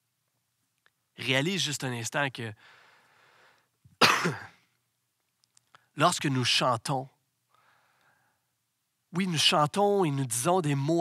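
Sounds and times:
faint breath: 2.6s - 3.8s, 7.5s - 8.6s
man coughing: 4.0s - 4.6s.

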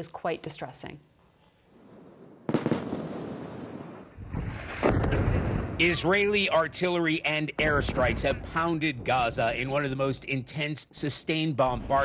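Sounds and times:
explosion blast: 1.9s - 6.8s, 7.5s - 9.8s
explosion rumble rolling: 2.5s - 10.3s.

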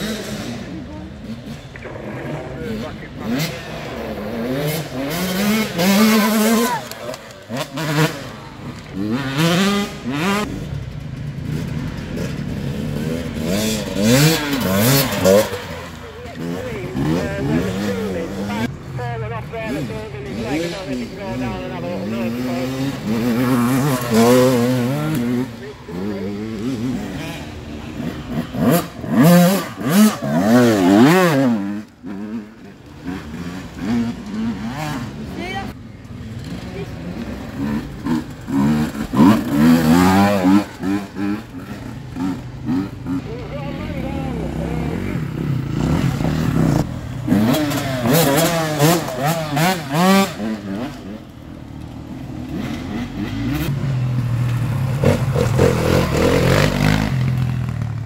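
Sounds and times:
dirt bike engines revving: 0.0s - 58.0s.

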